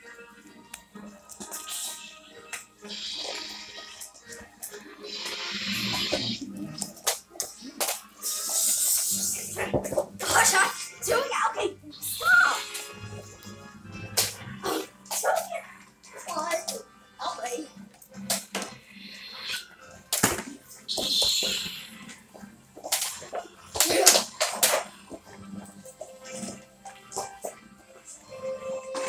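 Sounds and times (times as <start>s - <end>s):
background music: 0.0s - 29.0s
toy lightsaber hissing bursts: 1.6s - 4.1s, 5.0s - 6.4s, 8.2s - 9.6s, 12.0s - 13.0s, 18.9s - 19.7s
wordless shouts: 10.2s - 12.8s.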